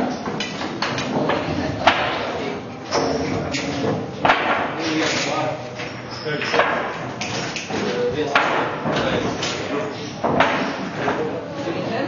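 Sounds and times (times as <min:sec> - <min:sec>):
pool balls clicking: 0:00.0 - 0:11.4.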